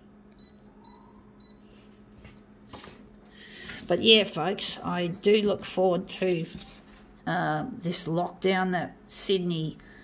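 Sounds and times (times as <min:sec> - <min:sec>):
faint steady hum: 0:00.0 - 0:10.0
photocopier touchscreen beeps: 0:00.4 - 0:01.7.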